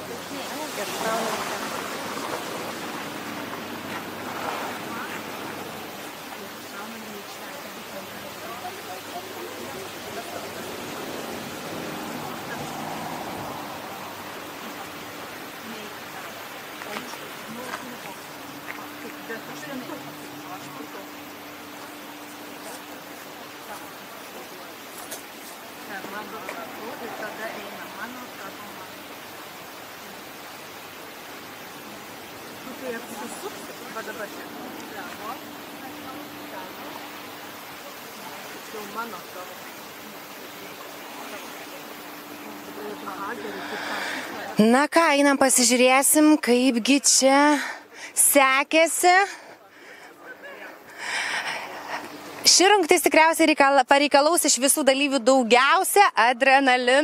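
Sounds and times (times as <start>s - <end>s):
faint distant voices: 0.0s - 53.6s
outdoor rushing hiss: 0.0s - 53.6s.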